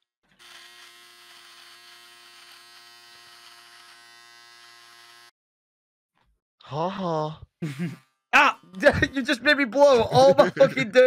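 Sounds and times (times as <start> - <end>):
electric shaver buzzing: 0.3 - 5.4.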